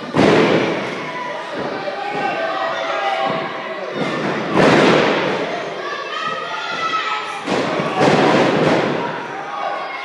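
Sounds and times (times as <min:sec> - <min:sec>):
spectators shouting: 0:00.7 - 0:10.0.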